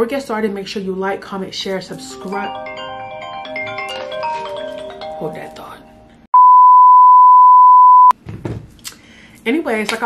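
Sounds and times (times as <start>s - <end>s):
steady single-pitch test tone: 6.3s - 8.1s.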